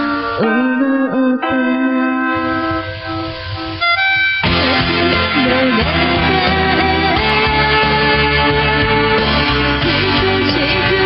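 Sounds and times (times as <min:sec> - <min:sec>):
karaoke backing music: 0:00.0 - 0:11.0.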